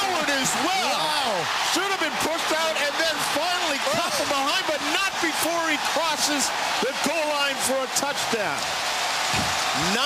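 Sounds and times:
excited commentator speaking: 0.0s - 8.7s, 9.7s - 10.0s.

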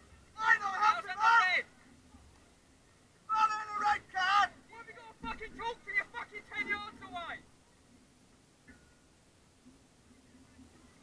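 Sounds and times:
person shouting: 3.3s - 5.1s.

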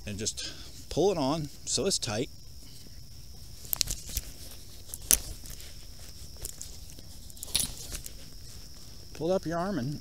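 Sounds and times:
fabric sleeve rustling: 2.6s - 9.1s.

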